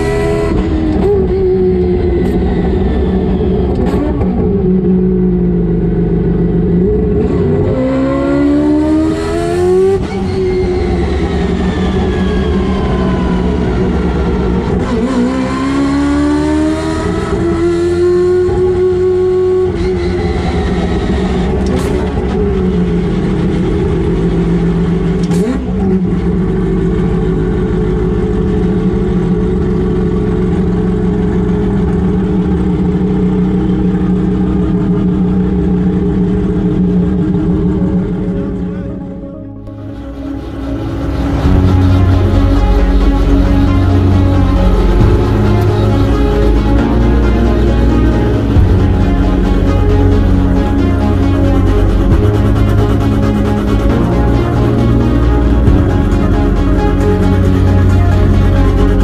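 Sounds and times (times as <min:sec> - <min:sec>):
rotary race car engine revving: 0:00.0 - 0:33.0.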